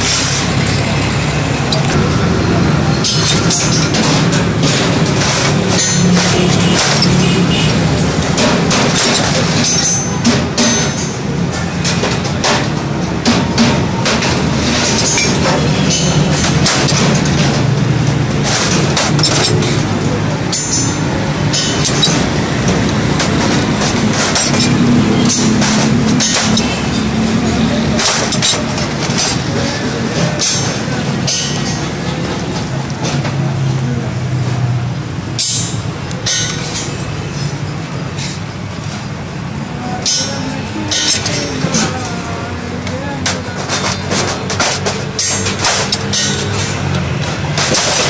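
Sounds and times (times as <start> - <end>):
traffic rumble: 0.0 - 48.0.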